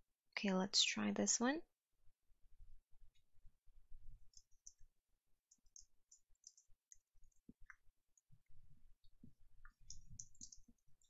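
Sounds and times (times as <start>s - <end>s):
computer mouse clicking: 4.2s - 8.3s, 9.1s - 11.0s
keyboard keys clicking: 5.5s - 8.3s, 9.7s - 11.0s.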